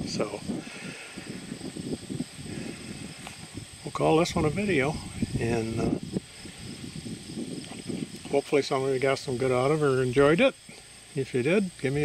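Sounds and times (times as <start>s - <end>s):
wind buffeting microphone: 0.0s - 10.4s
high-pitched insect drone: 0.0s - 12.0s.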